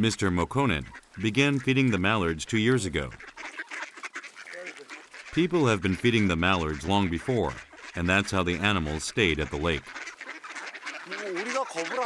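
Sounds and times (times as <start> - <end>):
ducks quacking: 0.0 - 12.0
birds jostling and pecking: 0.3 - 12.0.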